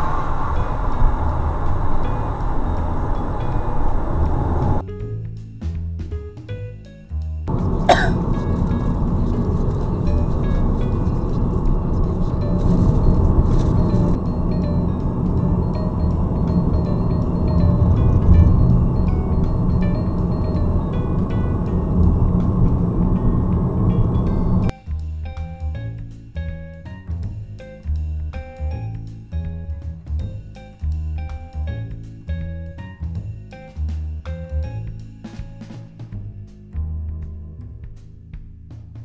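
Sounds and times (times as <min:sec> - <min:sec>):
road and engine noise inside car: 0:00.0 - 0:04.8, 0:07.5 - 0:24.7
faint background music: 0:00.0 - 0:39.0.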